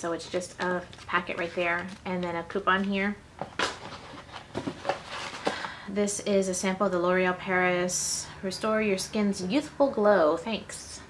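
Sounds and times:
paper rustling: 0:00.2 - 0:05.8.

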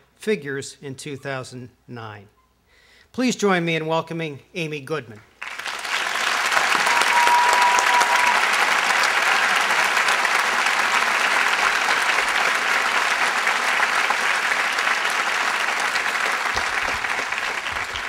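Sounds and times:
audience applauding: 0:05.4 - 0:18.0.

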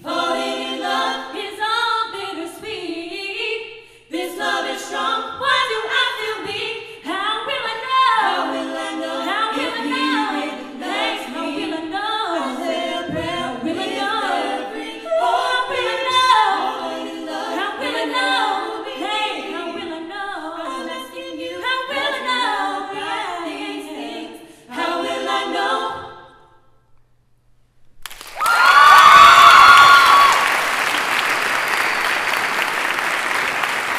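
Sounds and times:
vocal quartet singing a cappella: 0:00.0 - 0:26.8.

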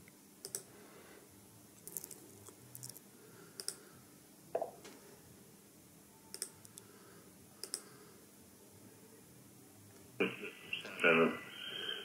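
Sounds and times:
laptop clicks: 0:03.6 - 0:03.8, 0:07.6 - 0:07.9.

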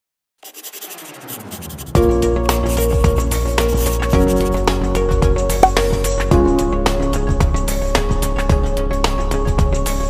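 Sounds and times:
pencil scribbling on paper: 0:00.4 - 0:04.6.

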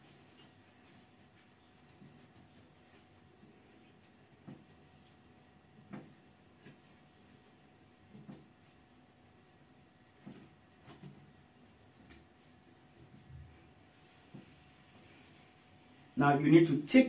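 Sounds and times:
faint taps and rustles from hands: 0:00.0 - 0:15.6.

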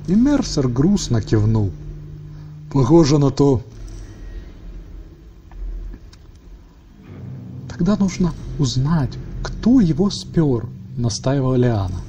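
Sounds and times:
low steady rumbling: 0:00.0 - 0:12.0.

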